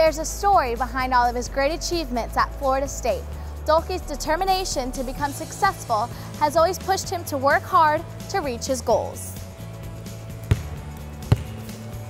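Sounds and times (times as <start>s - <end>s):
background music: 0.0s - 12.0s
basketball bouncing on wooden floor: 10.4s - 11.8s.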